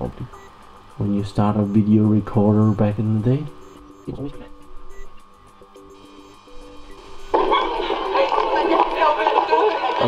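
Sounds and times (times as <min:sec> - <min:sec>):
faint steady hum: 0:00.0 - 0:10.0
voices and music from tape: 0:00.0 - 0:10.0.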